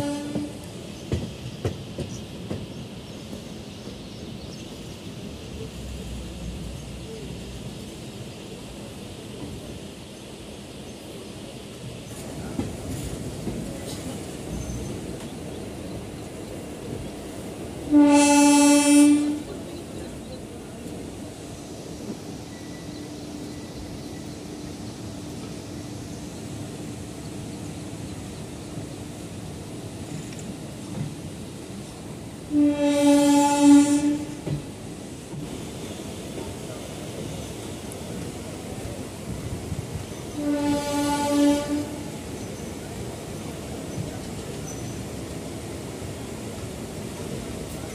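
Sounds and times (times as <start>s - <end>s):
locomotive horn blasts: 0.0s - 0.7s, 17.9s - 19.5s, 32.5s - 34.4s, 40.3s - 42.1s
train rumble and rail clatter: 0.0s - 47.9s.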